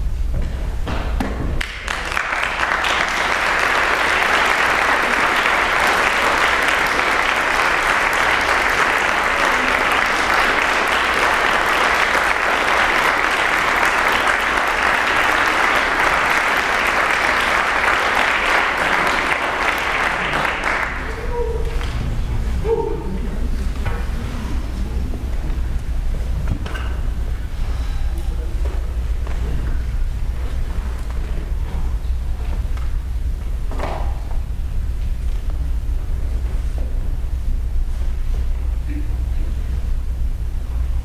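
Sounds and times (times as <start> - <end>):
audience applauding: 1.6 - 26.4.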